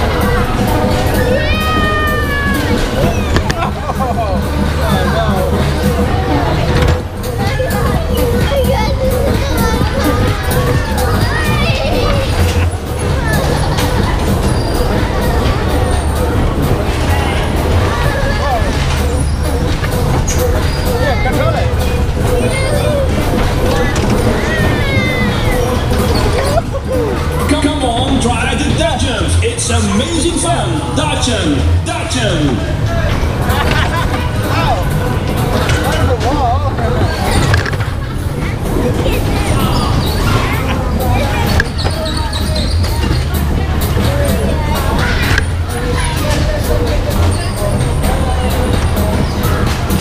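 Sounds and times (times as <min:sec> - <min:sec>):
bumper car ride rumble: 0:00.0 - 0:50.0
music: 0:00.0 - 0:50.0
voices: 0:00.0 - 0:50.0
child squealing: 0:01.3 - 0:03.3.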